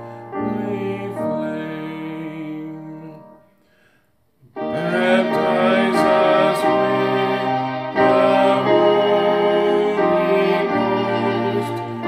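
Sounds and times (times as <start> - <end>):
instrumental accompaniment: 4.4 - 12.0
hymn sung in long chords: 4.5 - 12.0.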